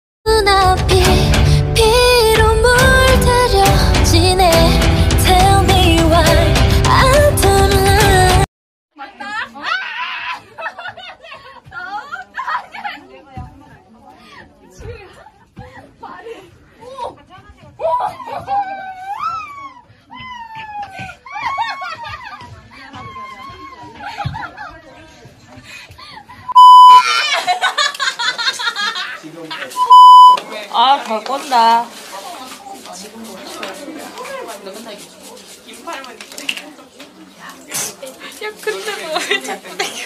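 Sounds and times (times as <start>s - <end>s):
young women talking excitedly: 9.0s - 27.3s
women giggling: 9.2s - 13.2s, 20.8s - 25.0s, 26.0s - 29.2s, 38.4s - 40.0s
women laughing: 9.2s - 13.2s, 20.8s - 25.0s, 26.1s - 29.2s, 38.4s - 40.0s
broadcast test tone beeps: 26.5s - 27.0s, 29.8s - 30.4s
young women chattering: 30.2s - 40.0s.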